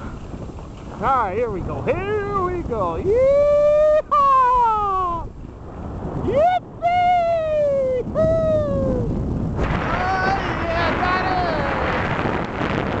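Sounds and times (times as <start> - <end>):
person whooping: 3.1 - 5.3, 6.2 - 9.1.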